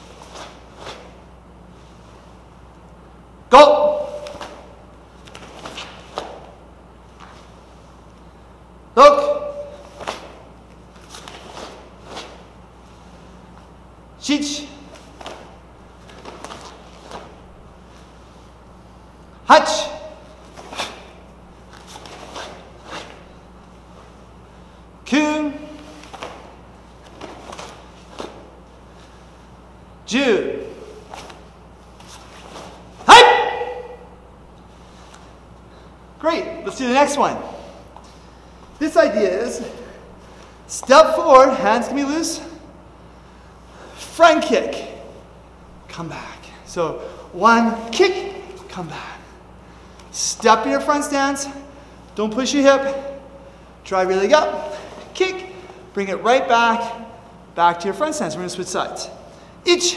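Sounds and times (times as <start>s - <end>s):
cloth uniform rustling: 0.0s - 3.0s, 3.9s - 8.4s, 9.5s - 13.8s, 14.8s - 30.0s, 30.6s - 36.7s
man shouting: 3.5s - 4.7s, 9.0s - 10.0s, 14.2s - 14.9s, 19.4s - 21.0s, 25.1s - 25.9s, 30.1s - 31.0s, 33.0s - 34.2s, 36.2s - 37.7s, 38.8s - 39.8s, 40.7s - 42.6s, 44.1s - 45.1s, 46.0s - 49.1s, 53.9s - 59.1s, 59.7s - 59.9s
shouted count echo: 3.5s - 4.7s, 9.0s - 9.8s, 33.0s - 34.2s
bare feet tapping on mats: 4.2s - 6.6s, 25.9s - 28.6s.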